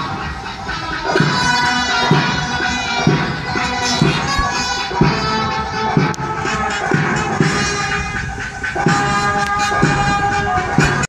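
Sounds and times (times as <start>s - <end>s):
band playing slow anthem: 0.0s - 11.0s.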